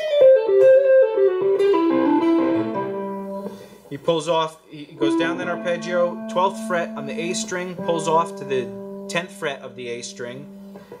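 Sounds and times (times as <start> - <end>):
clean electric guitar run: 5.0 - 11.0.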